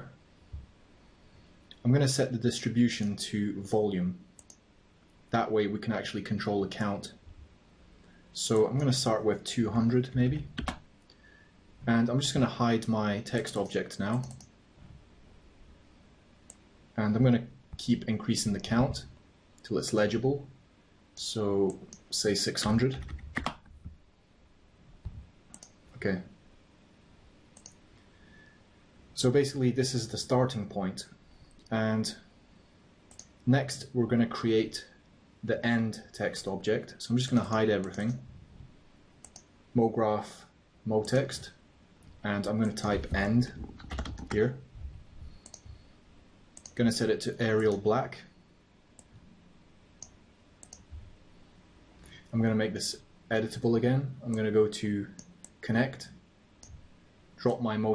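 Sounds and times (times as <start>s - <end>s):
keyboard keystrokes: 10.4s - 10.8s, 22.9s - 23.7s, 43.6s - 44.4s
faint computer mouse clicks: 14.1s - 14.5s, 25.0s - 25.8s, 27.6s - 27.8s, 39.2s - 39.5s, 45.4s - 45.8s, 46.6s - 46.8s, 50.0s - 50.9s.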